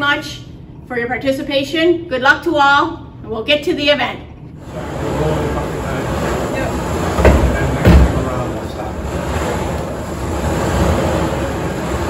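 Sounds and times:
balls tumbling in rotating drum: 4.7 - 12.0
heavy thumps in drum: 6.9 - 9.6.

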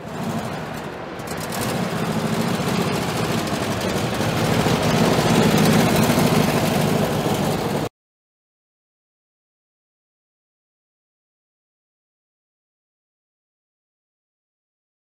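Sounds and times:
classic car engines running: 0.0 - 7.9.

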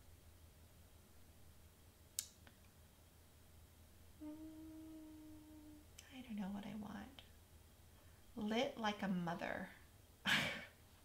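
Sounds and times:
low mumbled vocal sound: 4.2 - 5.9
woman humming: 4.2 - 6.0.

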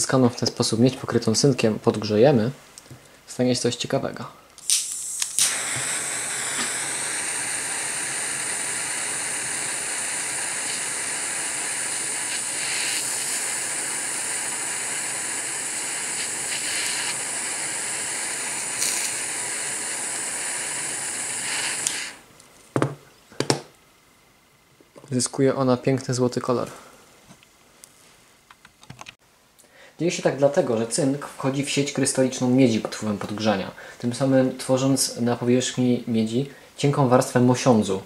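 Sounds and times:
butane torch hissing flame: 4.6 - 22.3.

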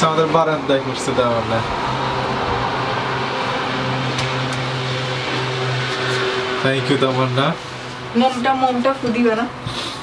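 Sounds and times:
mechanical hum with low drone: 0.0 - 10.0.

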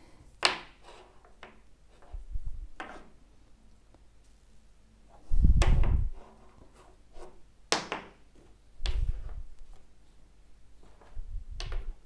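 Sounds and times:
wooden blocks knocking and scraping: 0.4 - 3.2.

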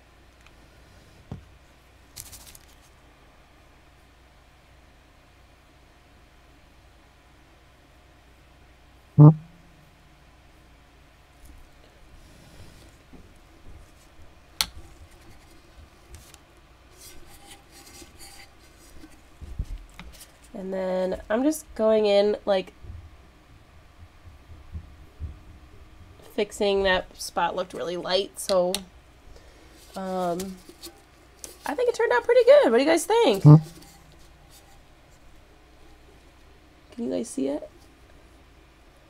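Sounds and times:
loud thump: 9.2 - 9.8, 33.4 - 33.8.

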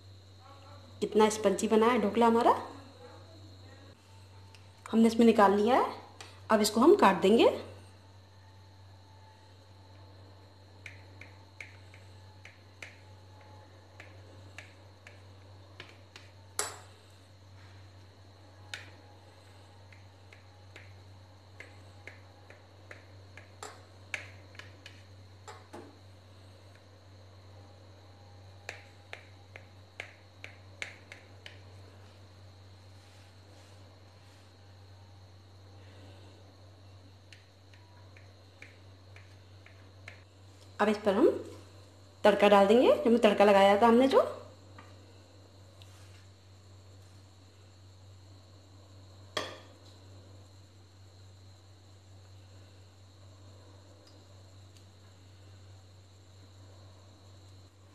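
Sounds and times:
steady low hum: 0.0 - 57.9.

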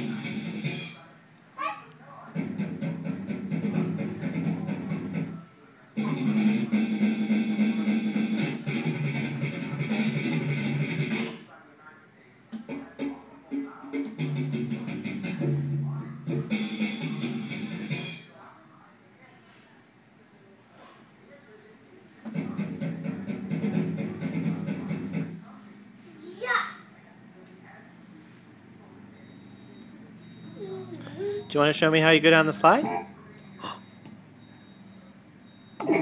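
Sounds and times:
recorded guitar and drum music snippets: 0.0 - 0.9, 2.4 - 5.4, 6.0 - 11.4, 12.6 - 18.2, 22.4 - 25.4.

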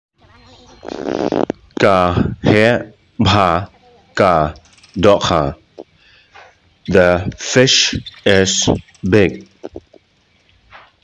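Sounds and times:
raspy buzzing: 0.4 - 11.0
man speaking: 1.2 - 5.8, 6.9 - 9.8.

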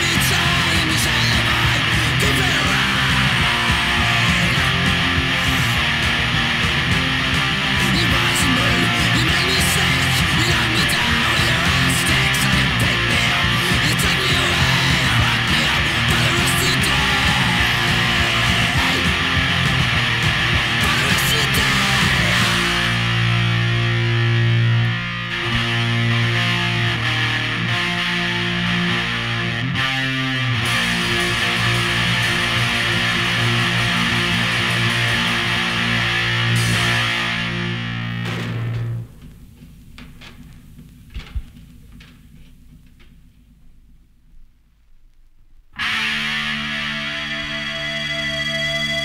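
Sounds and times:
punk rock band playing: 0.0 - 39.9, 45.8 - 49.0
distorted electric guitar chords: 0.0 - 43.1, 45.7 - 49.0.

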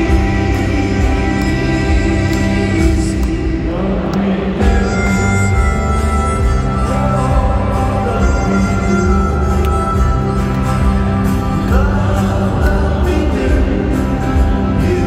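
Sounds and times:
live band music over sound system: 0.0 - 15.0.

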